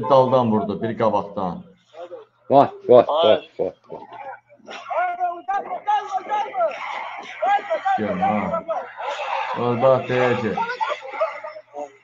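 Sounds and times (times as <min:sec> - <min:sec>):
men talking and chuckling: 0:02.0 - 0:12.0
deep male voice: 0:04.8 - 0:11.2.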